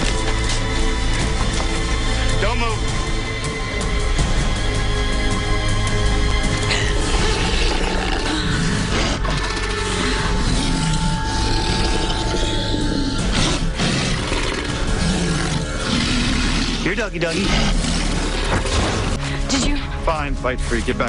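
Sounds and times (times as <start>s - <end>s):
tense dramatic film score: 0.0s - 21.0s
wolf growling and snarling: 6.4s - 19.2s.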